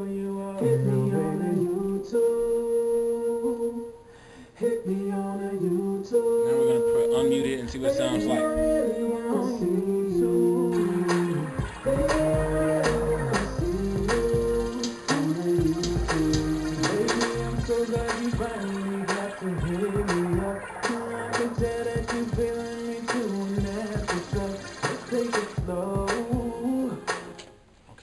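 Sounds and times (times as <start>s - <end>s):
layered sung vocals: 0.0s - 27.6s
sustained chords: 6.5s - 25.2s
drum beat: 10.8s - 27.3s.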